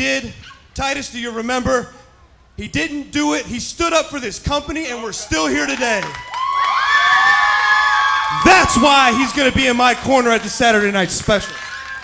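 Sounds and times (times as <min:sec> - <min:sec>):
arena crowd cheering: 0:05.2 - 0:12.0.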